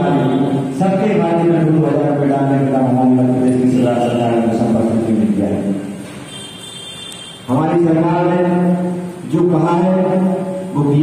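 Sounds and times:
man speaking over a microphone: 0.0 - 6.0, 7.5 - 11.0.

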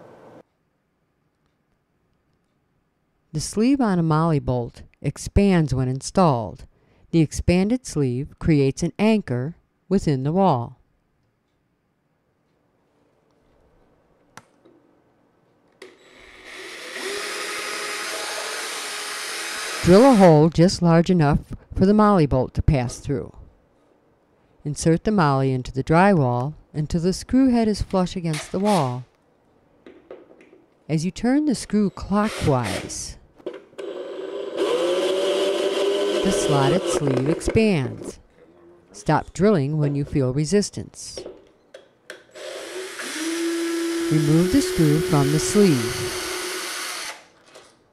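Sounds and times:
click: 1.3 - 2.6
cordless drill boring into drywall: 15.8 - 20.4, 32.2 - 33.0, 33.8 - 37.4, 42.3 - 47.4.

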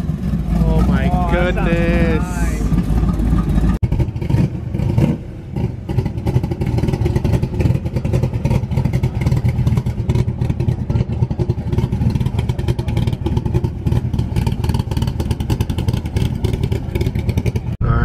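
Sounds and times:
car engine pulsing exhaust: 0.0 - 18.0.

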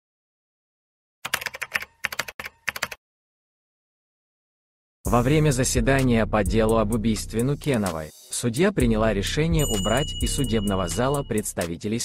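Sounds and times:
rapid keyboard typing: 1.2 - 3.0.

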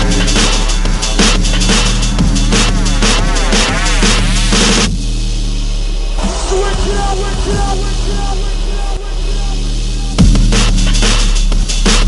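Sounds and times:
low bass drone: 0.0 - 12.0.

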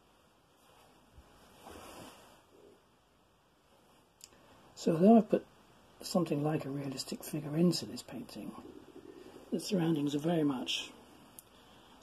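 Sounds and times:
soft rustle: 0.0 - 4.7.

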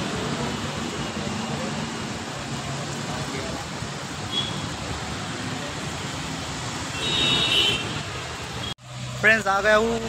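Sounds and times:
rain: 0.0 - 10.0
traffic on wet road: 0.0 - 10.0
high-pitched vehicle horn: 7.0 - 8.0.

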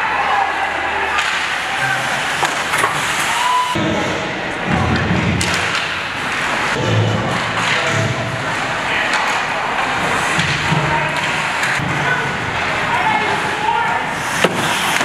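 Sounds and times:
hockey sticks and puck clacking: 1.1 - 15.0
skates scraping ice: 1.2 - 3.8, 5.4 - 15.0.

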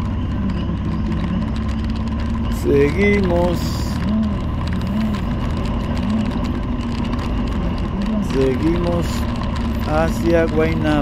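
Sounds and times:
motorcycle engine running: 0.0 - 11.0
tyres on wet road: 0.0 - 11.0.

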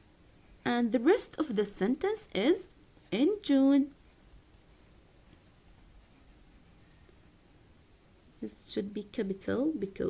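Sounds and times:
pen scratching on paper: 0.0 - 1.1, 4.0 - 7.0.

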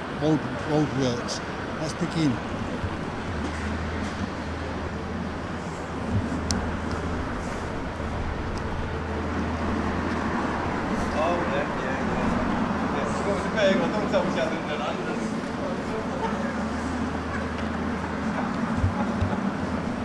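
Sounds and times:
low hum of traffic: 0.0 - 20.0.

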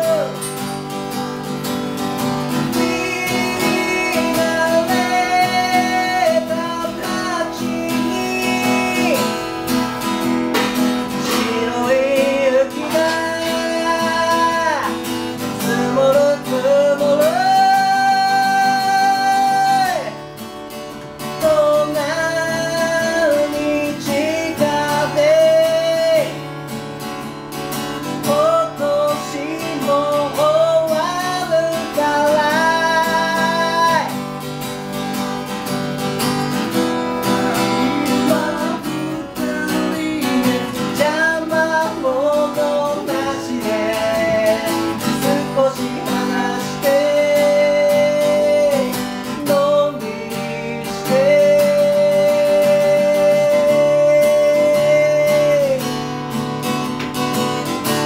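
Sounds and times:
two men singing: 0.0 - 0.5, 2.4 - 9.7, 10.6 - 20.2, 21.3 - 26.5, 28.2 - 34.2, 36.7 - 55.9
acoustic guitar: 0.0 - 58.0.

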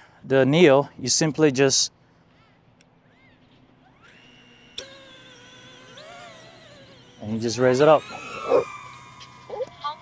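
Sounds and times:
drone motors whining: 3.0 - 10.0.

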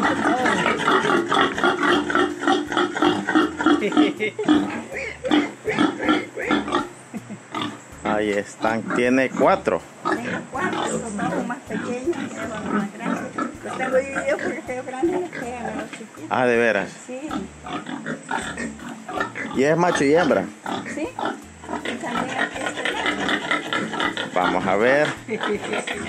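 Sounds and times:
pigs grunting: 0.0 - 26.0.

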